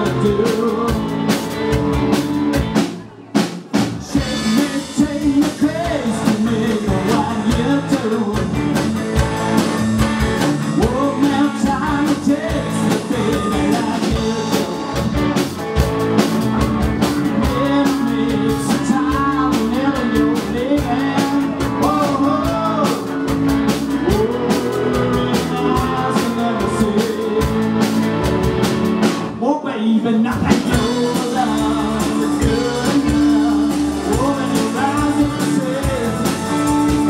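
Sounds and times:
live rock band playing: 0.0s - 29.4s, 30.3s - 37.0s
wavering melodic lead line: 4.1s - 29.4s, 30.7s - 37.0s.

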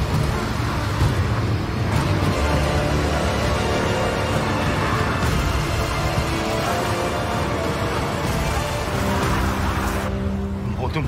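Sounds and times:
low rumble from film soundtrack: 0.0s - 11.0s
thick wash of noise: 0.0s - 11.0s.

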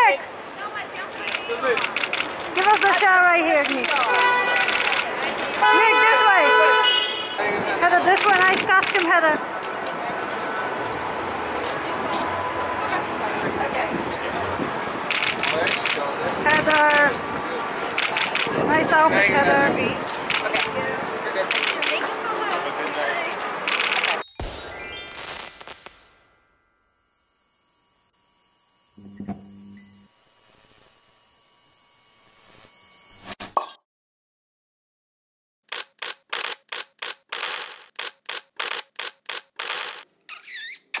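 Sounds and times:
street noise: 0.0s - 26.4s, 35.7s - 41.0s
sharp clicks: 1.2s - 5.1s, 8.2s - 10.0s, 15.1s - 16.0s, 35.7s - 40.1s.

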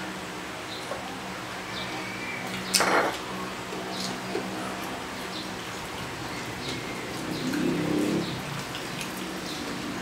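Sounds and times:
mouths chewing wetly: 1.7s - 10.0s.

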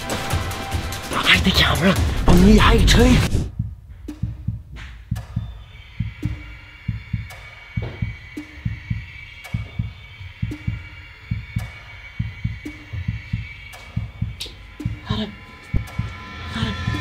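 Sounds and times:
heartbeat-like low pulses: 2.0s - 17.0s
high sustained tone: 8.4s - 17.0s.

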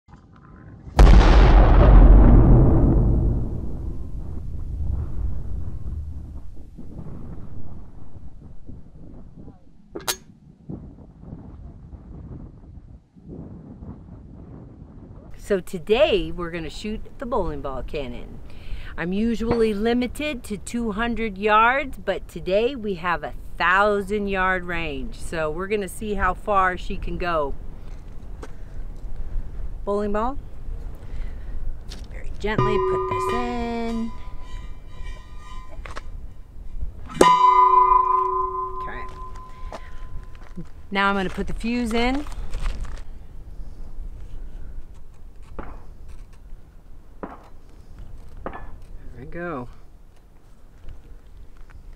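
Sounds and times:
wind buffeting microphone: 0.2s - 51.9s
sharp metal clang: 10.0s - 10.3s, 32.5s - 36.2s, 37.1s - 40.4s
metal barrel ringing: 32.5s - 36.5s, 37.1s - 40.5s
short sharp high-pitched sound: 32.6s - 36.0s.

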